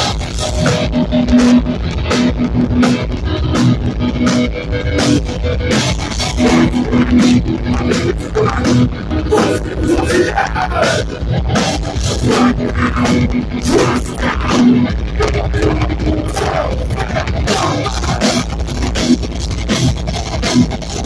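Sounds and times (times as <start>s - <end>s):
distorted electric guitars riff: 0.0s - 21.0s
drum kit: 0.0s - 21.0s.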